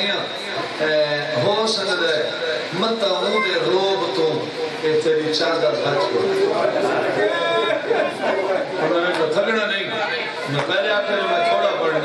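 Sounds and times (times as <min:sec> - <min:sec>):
man speaking into a microphone: 0:00.0 - 0:06.8, 0:08.7 - 0:12.0.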